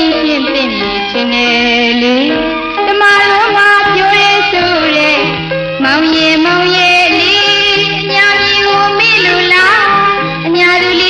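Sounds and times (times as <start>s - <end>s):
instrumental accompaniment: 0.0s - 11.0s
woman singing a pop melody: 0.0s - 11.0s.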